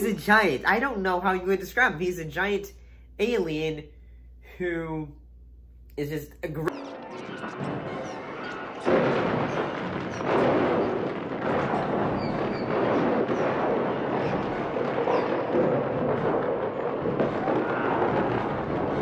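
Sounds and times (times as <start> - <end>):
loud crash: 6.7 - 19.0
rumbling and crashing din: 6.7 - 19.0.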